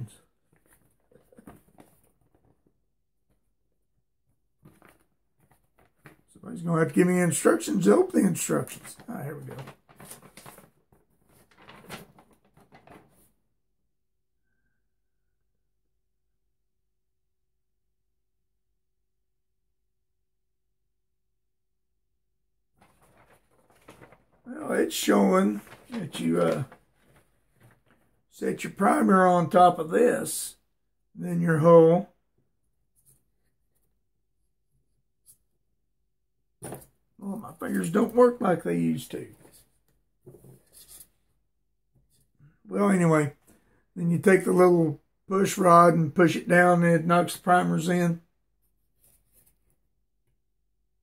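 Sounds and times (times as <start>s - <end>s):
paper sheet rustling: 7.3s - 13.3s, 22.8s - 29.5s, 36.6s - 41.3s.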